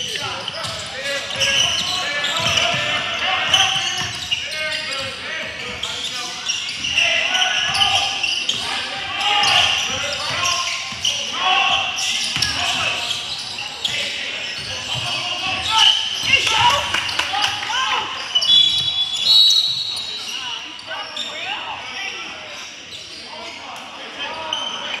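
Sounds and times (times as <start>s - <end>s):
players calling out: 0.0s - 25.0s
sneakers squeaking: 0.0s - 25.0s.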